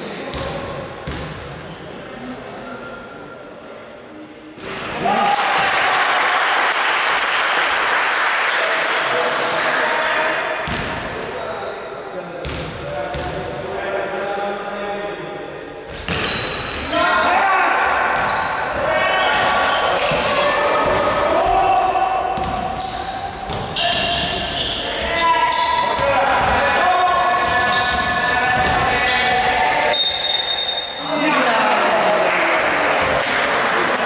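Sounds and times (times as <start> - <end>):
voices shouting in a hall: 4.6 - 12.1, 13.6 - 34.0
basketball bouncing: 10.6 - 10.9.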